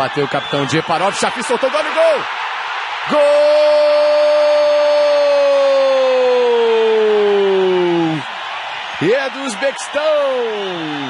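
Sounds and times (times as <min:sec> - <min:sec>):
stadium crowd noise: 0:00.0 - 0:11.0
sports commentator shouting goal: 0:00.9 - 0:02.3, 0:03.0 - 0:08.2, 0:09.0 - 0:11.0.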